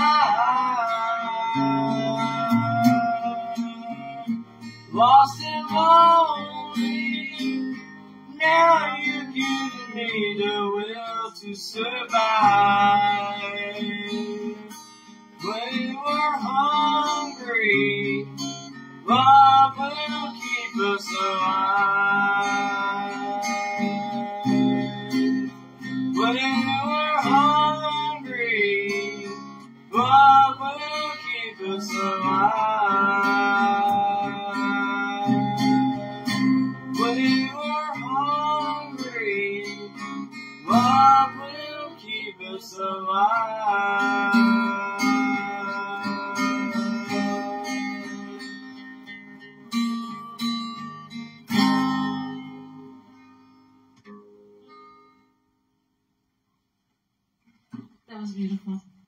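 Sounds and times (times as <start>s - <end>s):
person singing: 0.0s - 18.4s, 19.0s - 49.0s
acoustic guitar strumming: 0.0s - 55.8s.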